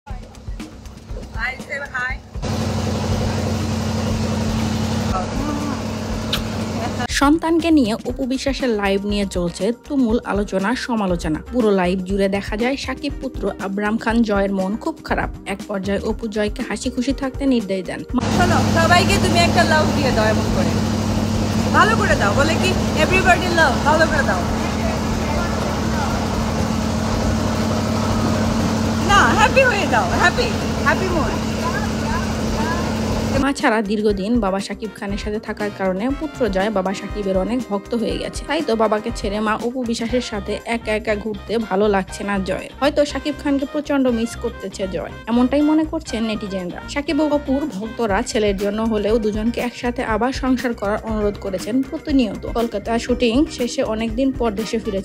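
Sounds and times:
boat engine running: 0.1s - 8.5s, 18.2s - 34.3s.

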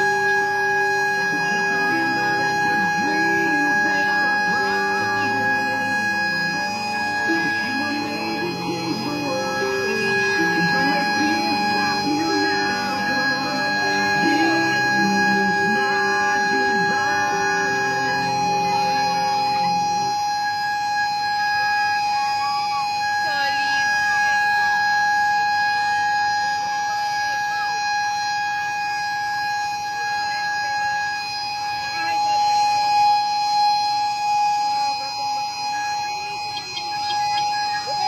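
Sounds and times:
people's voices: 0.0s - 38.0s
steady warning tone: 0.0s - 38.0s.

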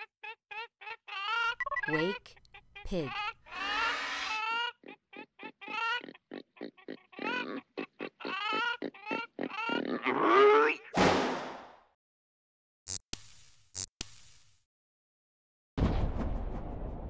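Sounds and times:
pig squealing and grunting: 3.1s - 10.9s.

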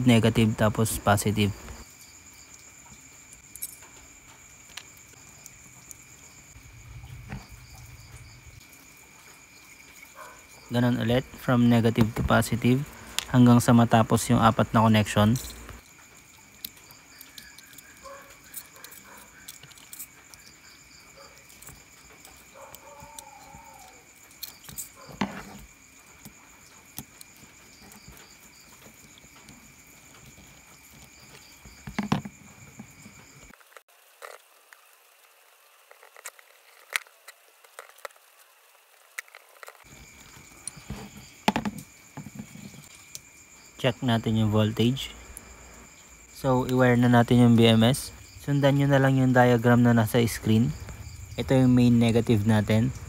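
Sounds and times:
crickets chirring: 0.0s - 53.0s.

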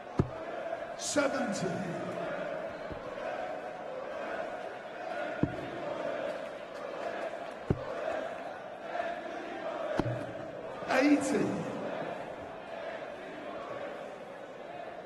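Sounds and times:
murmur of arena crowd: 0.0s - 15.0s.

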